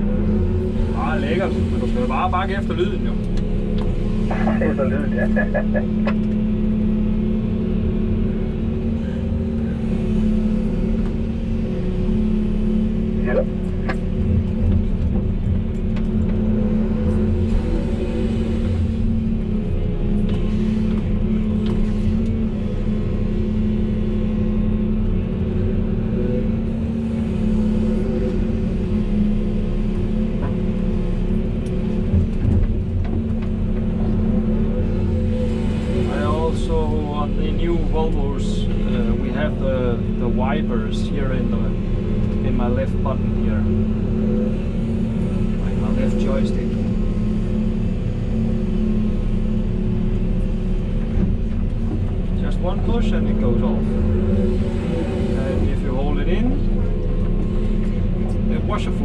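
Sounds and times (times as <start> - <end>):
excavator diesel engine running: 0.0 - 59.0
hydraulics working: 0.0 - 59.0
wavering pitched sounds: 4.2 - 6.9, 13.2 - 13.6.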